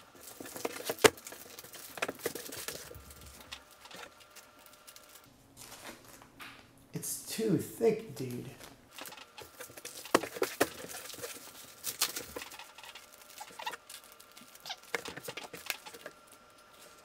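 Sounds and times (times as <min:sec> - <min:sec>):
plastic bags crinkling: 0:00.0 - 0:06.4, 0:08.6 - 0:17.0
cardboard boards tapping: 0:09.6 - 0:11.3.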